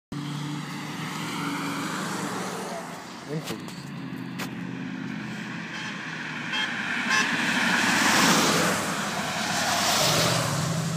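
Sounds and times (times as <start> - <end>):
vehicle engine hum: 0.1 - 10.9.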